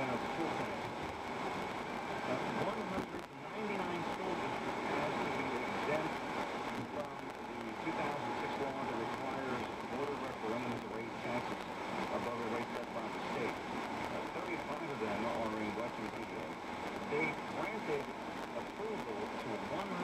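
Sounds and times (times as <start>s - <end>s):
muffled radio talk: 0.0s - 1.1s, 2.0s - 20.0s
road noise inside car: 0.0s - 20.0s.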